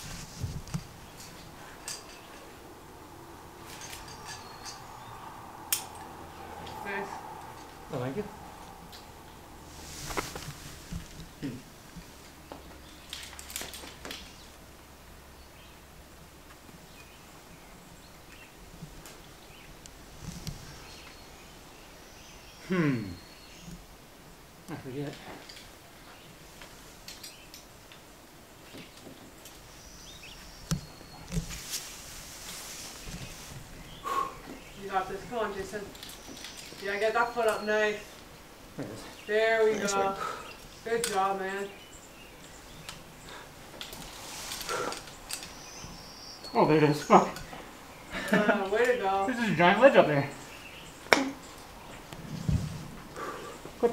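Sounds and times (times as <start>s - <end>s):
metallic clinks of carabiners: 1.2s - 2.5s, 3.6s - 5.0s
faint scuffs: 9.7s - 11.2s.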